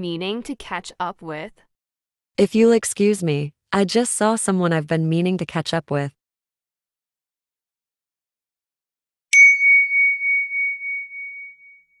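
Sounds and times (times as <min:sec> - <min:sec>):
bell-like ding: 0:09.3 - 0:12.0.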